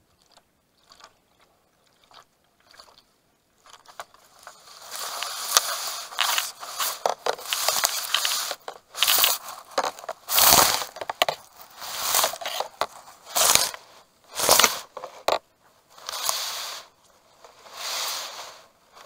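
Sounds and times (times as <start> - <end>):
grass and reeds rustling and crunching: 3.6 - 19.0.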